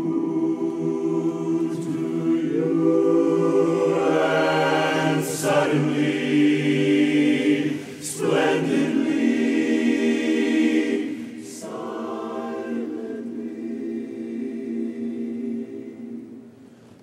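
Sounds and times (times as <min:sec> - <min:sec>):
men's chorus singing a cappella: 0:00.0 - 0:16.4.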